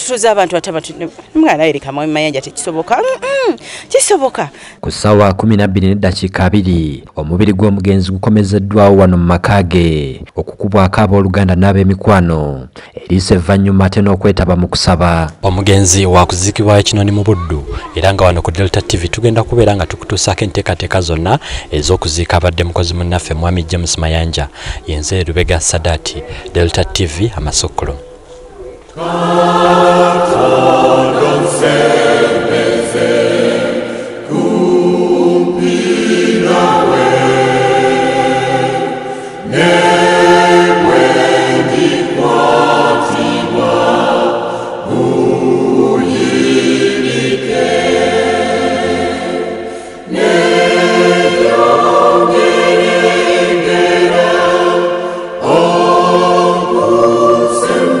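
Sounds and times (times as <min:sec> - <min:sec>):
choir singing: 0:28.9 - 0:58.0.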